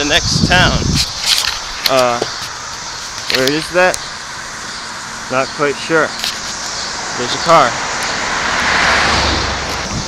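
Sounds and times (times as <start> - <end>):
car driving past: 4.1 - 10.0.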